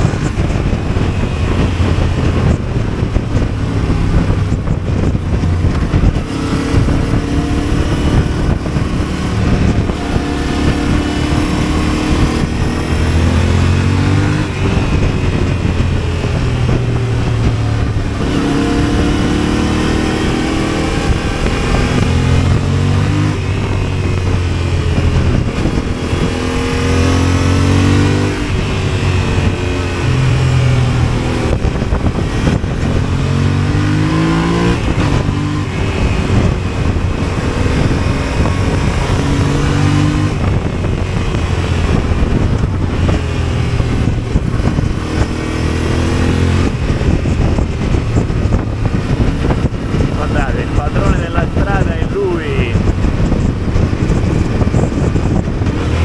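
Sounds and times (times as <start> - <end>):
motorcycle engine accelerating: 0.0 - 56.0
wind noise: 0.0 - 56.0.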